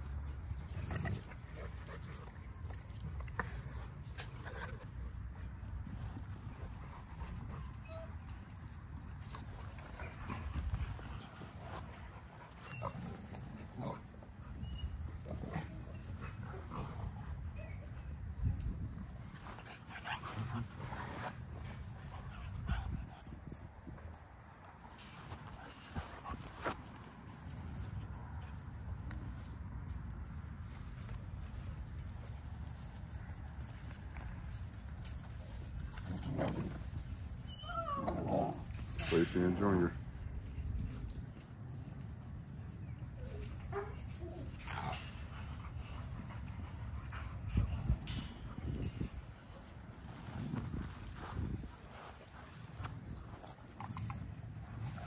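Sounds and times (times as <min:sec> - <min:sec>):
dogs scuffling: 0:18.2 - 0:29.6, 0:30.2 - 0:55.0.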